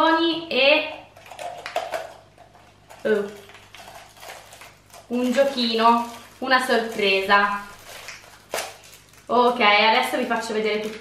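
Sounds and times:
paper and plastic rustling: 0:01.2 - 0:11.0
plastic crackles and clicks: 0:01.2 - 0:11.0.

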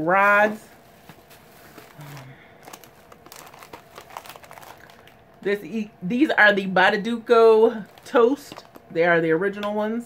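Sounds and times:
plastic packaging crinkling: 0:00.0 - 0:05.5, 0:07.7 - 0:09.0.

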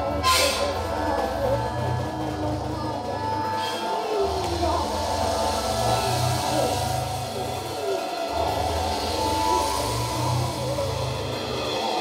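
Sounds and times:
low bass drone: 0:00.0 - 0:12.0
noisy hiss: 0:00.0 - 0:12.0
wavering gliding high tones: 0:00.0 - 0:12.0.

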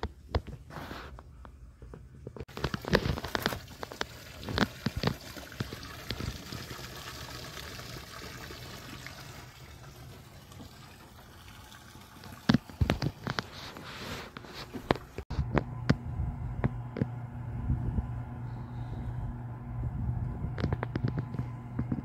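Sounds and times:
water lapping against boat hull: 0:02.5 - 0:06.8.

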